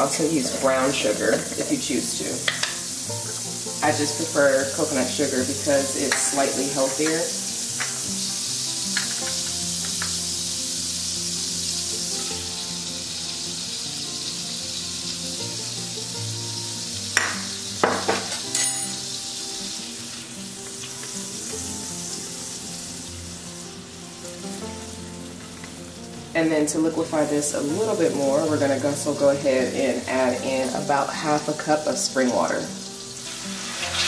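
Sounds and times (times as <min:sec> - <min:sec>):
butter sizzling in skillet: 0:00.0 - 0:34.0
sugar knocking into pan: 0:17.2 - 0:18.6.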